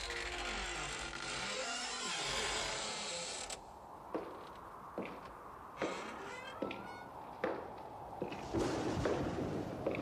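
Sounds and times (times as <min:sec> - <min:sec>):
creaking: 0:00.0 - 0:03.6, 0:05.8 - 0:07.3.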